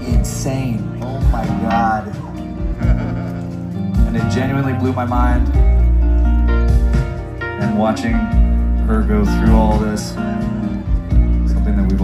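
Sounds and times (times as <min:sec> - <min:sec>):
live band playing soft notes: 0:00.0 - 0:12.0.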